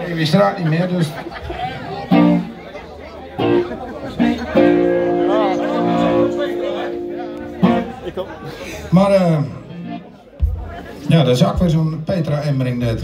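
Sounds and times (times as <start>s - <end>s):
electric guitar through amplifier: 3.4s - 8.2s.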